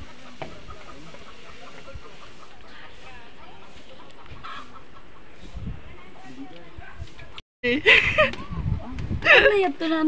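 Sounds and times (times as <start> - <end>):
chickens clucking: 0.0 - 7.4.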